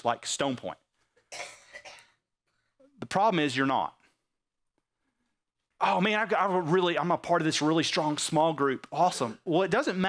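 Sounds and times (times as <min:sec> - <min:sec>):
person coughing: 0:01.3 - 0:02.2.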